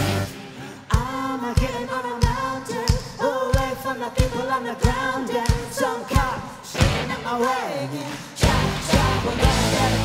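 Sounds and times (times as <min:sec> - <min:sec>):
voices singing in harmony: 0:00.0 - 0:10.0.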